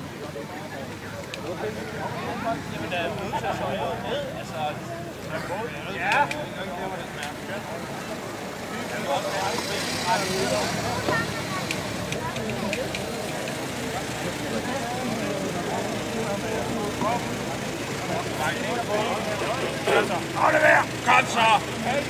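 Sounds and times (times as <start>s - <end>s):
murmur of chatter: 0.0s - 22.0s.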